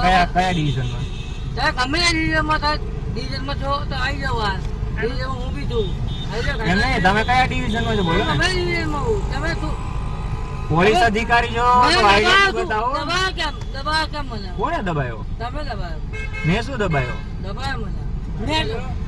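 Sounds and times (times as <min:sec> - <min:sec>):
men talking: 0:00.0 - 0:01.2, 0:05.0 - 0:13.3, 0:14.5 - 0:15.3, 0:16.4 - 0:17.3
street traffic rumble: 0:00.0 - 0:19.0.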